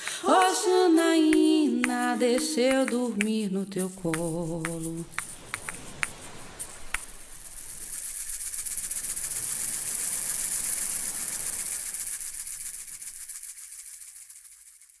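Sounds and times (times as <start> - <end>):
asalato seed rattle: 0.0 - 15.0.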